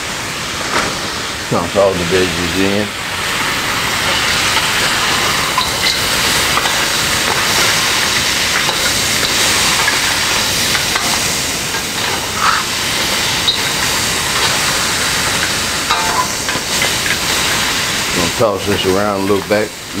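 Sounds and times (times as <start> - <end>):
food sizzling in a hot wok: 0.2 - 20.0
spatula scraping wok: 3.2 - 19.4.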